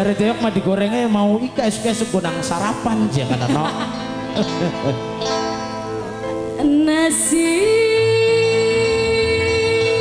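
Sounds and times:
live band music: 0.0s - 10.0s
woman singing a long note: 6.6s - 10.0s.

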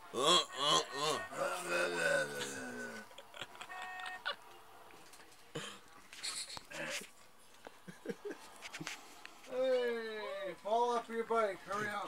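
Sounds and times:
man laughing: 0.2s - 4.4s.

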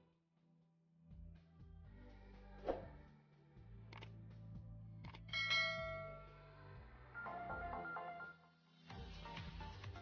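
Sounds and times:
background music with low bass: 1.0s - 10.0s
bell-like chime: 5.3s - 6.4s.

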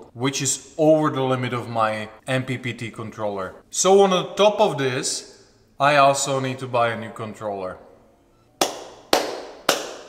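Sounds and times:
hand claps with room echo: 8.6s - 10.0s.

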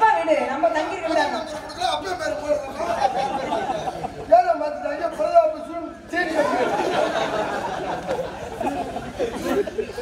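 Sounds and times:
several voices talking: 0.0s - 10.0s.

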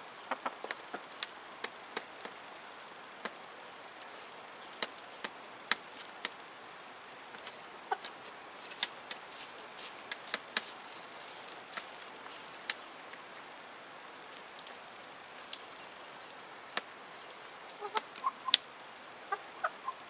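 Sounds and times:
chickens clucking: 0.0s - 3.3s, 7.2s - 20.0s.

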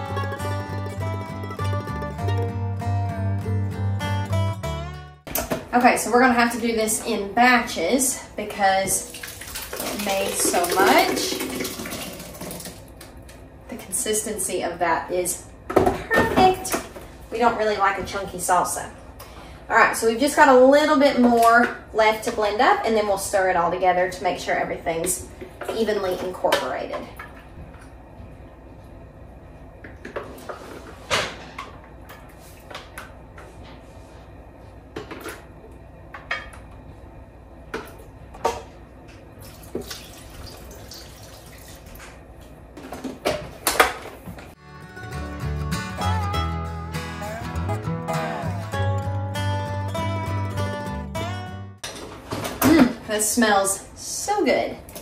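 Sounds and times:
background music with bass line: 0.0s - 5.3s, 44.6s - 51.8s.

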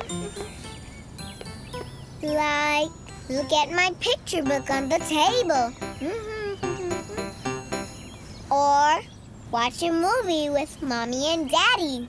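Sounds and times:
light children's music: 0.0s - 8.5s.

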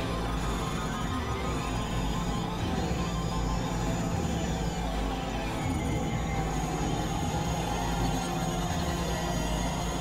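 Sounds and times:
electronic synthesizer drone music: 0.0s - 10.0s.

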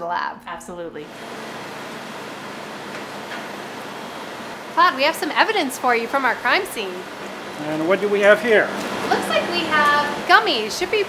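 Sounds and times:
steady room noise hiss: 0.1s - 11.0s.

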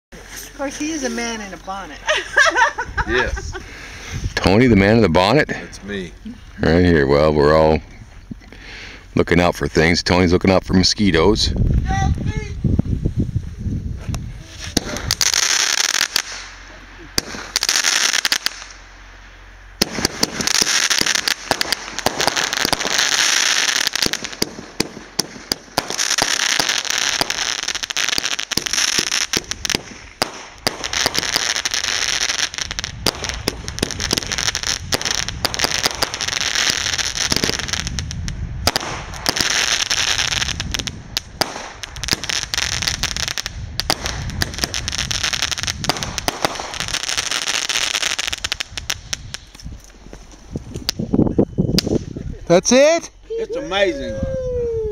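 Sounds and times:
firecrackers crackling and popping: 0.2s - 2.9s, 14.1s - 51.2s, 51.8s - 53.8s.

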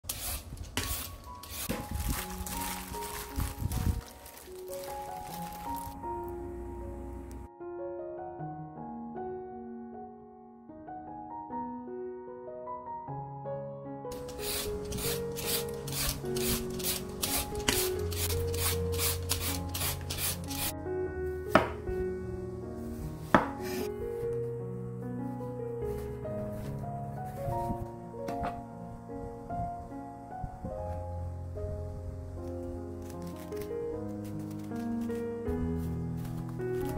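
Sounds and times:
peeler scraping cucumber skin: 0.0s - 3.2s, 14.2s - 20.7s
light background music: 0.1s - 36.9s
knife knocking on cutting board: 21.6s - 21.8s, 23.3s - 23.6s.

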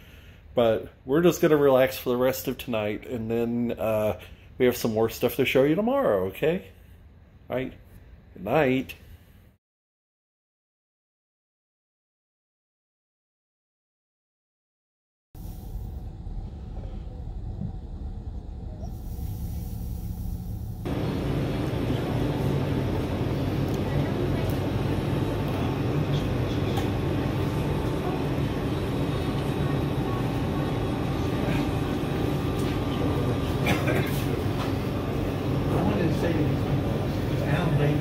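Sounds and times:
steady low hum: 15.4s - 38.0s
indistinct background chatter: 20.9s - 38.0s.

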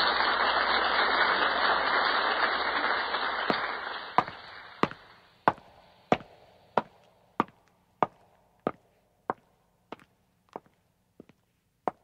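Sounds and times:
sharp knocks: 4.2s - 8.8s.

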